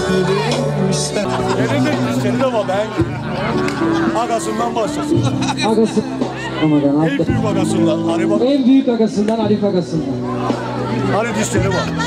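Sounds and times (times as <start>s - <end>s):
person singing into a microphone: 0.0s - 1.3s
backing music: 0.0s - 12.0s.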